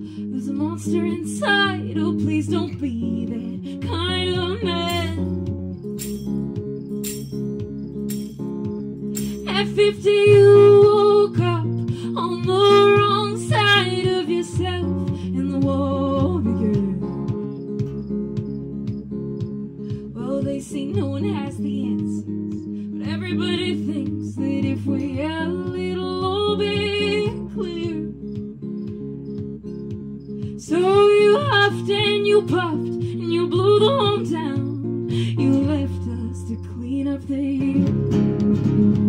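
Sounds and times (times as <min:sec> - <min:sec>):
woman singing a slow folk song: 0:00.0 - 0:07.7, 0:08.7 - 0:38.8
electric guitar chords: 0:00.0 - 0:39.0.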